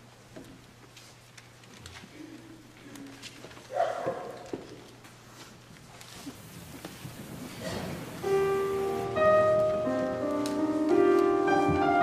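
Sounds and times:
faint rustling and shuffling: 0.0s - 12.0s.

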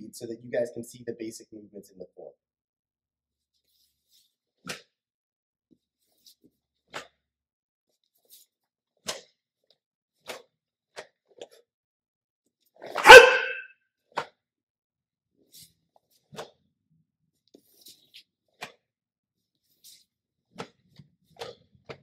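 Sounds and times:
martial arts shout: 13.0s - 13.6s.

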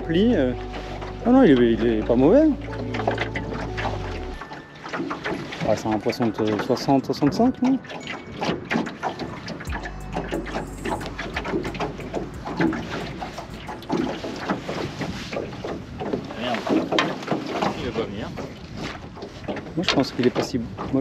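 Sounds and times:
low rumble on microphone: 9.7s - 16.0s.

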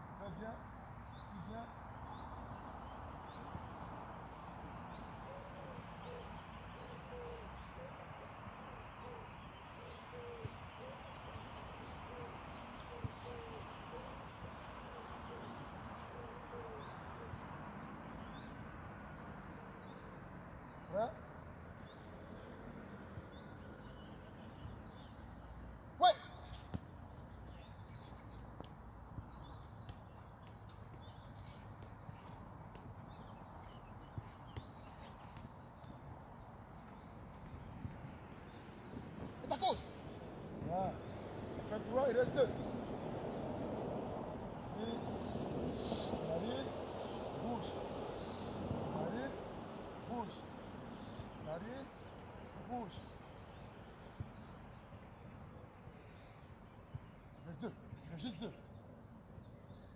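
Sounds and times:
low hooting bird calls: 4.5s - 18.4s, 29.2s - 42.8s
quick running steps: 28.4s - 39.9s
football touched by foot: 34.0s - 39.5s.

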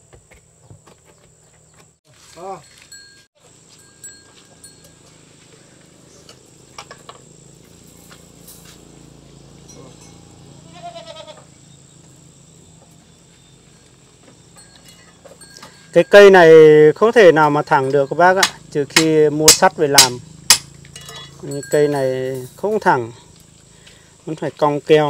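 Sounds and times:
farm animal bleating: 9.6s - 11.6s
wooden poles clicking and knocking: 17.4s - 21.5s.

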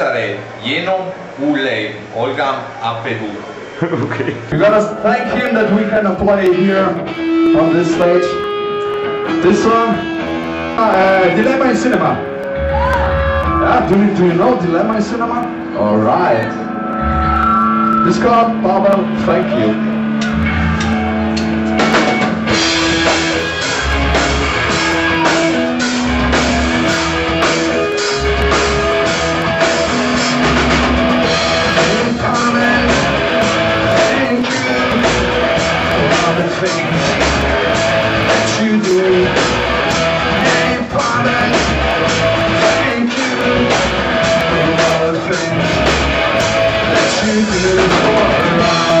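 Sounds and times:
live rock band playing: 4.4s - 49.0s
steady drum beat: 18.0s - 49.0s.

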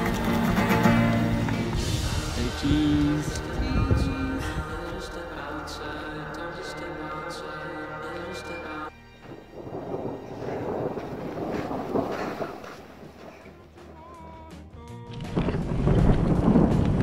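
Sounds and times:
wind buffeting microphone: 0.0s - 6.0s, 9.1s - 14.1s, 15.2s - 17.0s
quiet music: 0.0s - 17.0s
rolling thunder: 0.1s - 5.4s, 9.2s - 13.8s, 15.3s - 17.0s.

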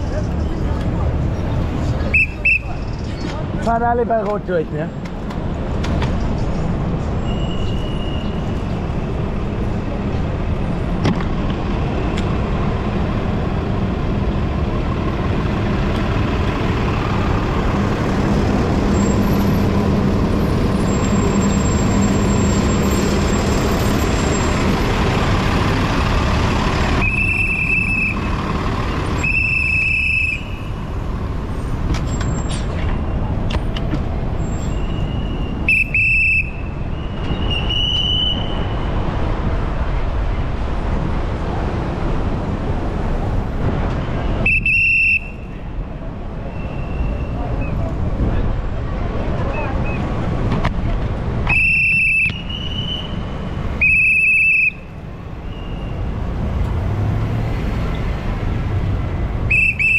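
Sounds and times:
low bus hum: 0.0s - 59.9s
traffic rumble: 0.0s - 59.9s.

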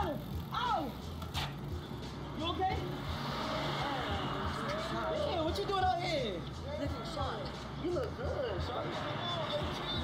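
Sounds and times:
voices: 2.0s - 10.0s
car passing by: 2.8s - 5.9s.

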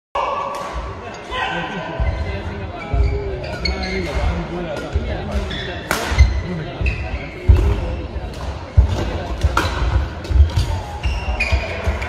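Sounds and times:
voices echoing in a hall: 0.2s - 12.0s.

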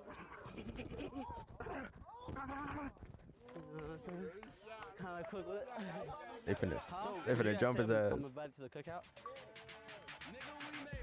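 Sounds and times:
men calling out and talking: 1.6s - 11.0s.

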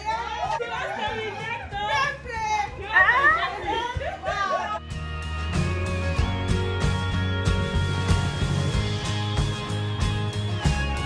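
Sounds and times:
people chattering: 0.0s - 4.8s.

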